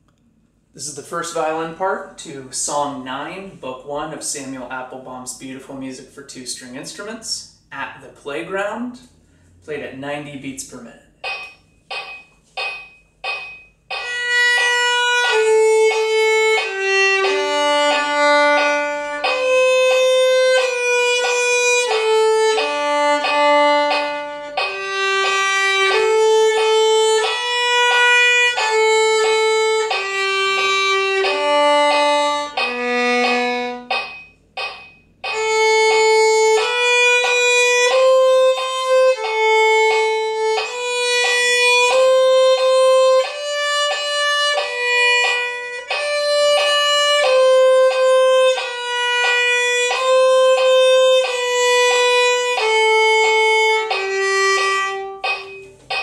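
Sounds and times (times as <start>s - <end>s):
solo violin playing: 13.9s - 56.0s.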